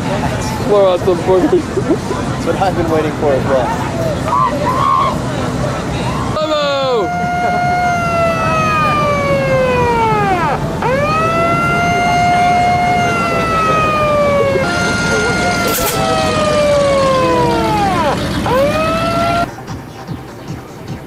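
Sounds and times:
electronic siren-like wail: 6.4 - 19.5.

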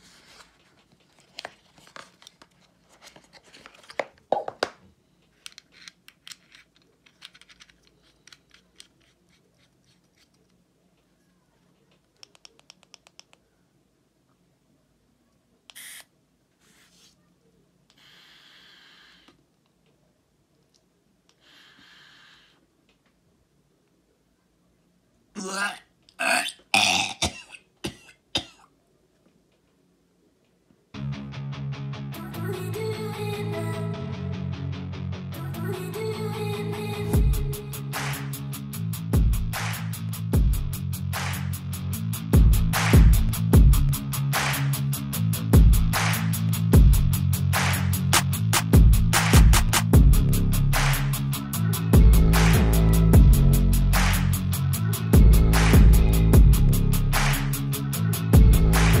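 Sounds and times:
man making throaty burp sounds: 25.4 - 27.5.

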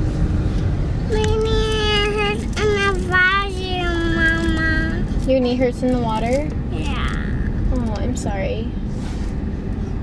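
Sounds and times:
car road noise: 0.0 - 10.0.

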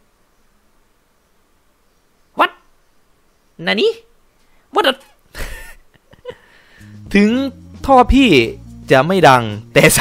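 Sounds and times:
man speaking: 3.6 - 4.1, 4.7 - 5.2, 7.0 - 10.0
man laughing breathily: 5.3 - 7.0.

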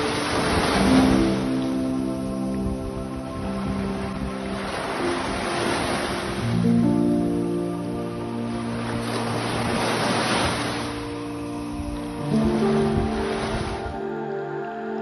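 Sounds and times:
small waves washing on shore: 0.0 - 14.0.

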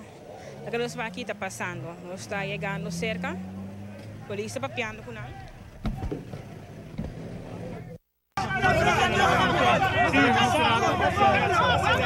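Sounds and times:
vehicle engine running: 0.1 - 8.0
dull knocks: 5.8 - 7.2.

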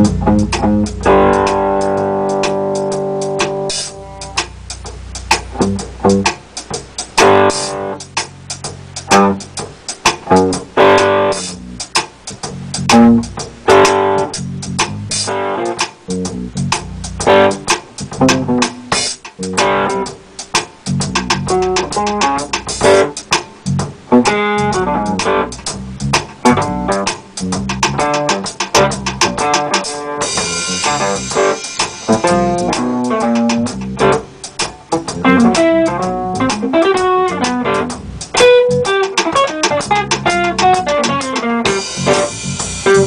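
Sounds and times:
electric bass: 0.0 - 29.6, 30.2 - 43.0
drums: 0.0 - 43.0
electric guitar atonal phrases: 28.8 - 43.0.

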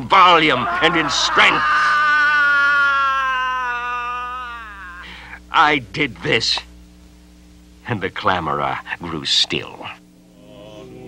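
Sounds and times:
man wailing yell: 0.2 - 5.2.

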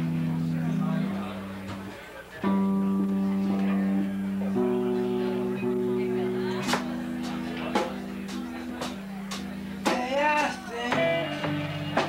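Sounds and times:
electric guitar chords ringing: 0.0 - 12.0.

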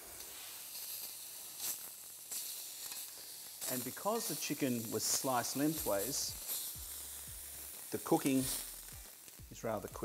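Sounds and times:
meat sizzling on a grill plate: 0.0 - 10.0.

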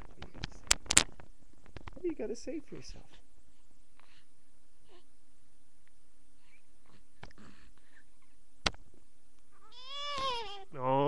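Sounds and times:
baby crying: 9.6 - 10.7.

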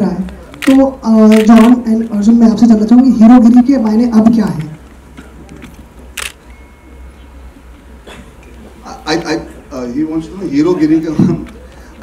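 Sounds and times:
low steady hum: 0.0 - 12.0
camera shutter click: 0.6 - 1.8, 6.2 - 6.4.

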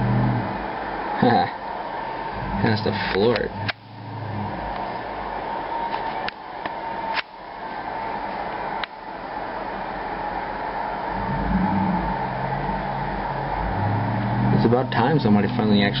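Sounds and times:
muffled truck engine rumble: 0.0 - 0.6, 2.4 - 5.2, 11.1 - 16.0.

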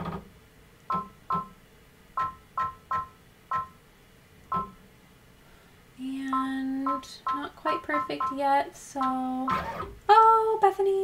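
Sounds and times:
two-tone touchscreen beeps: 6.3 - 8.4.

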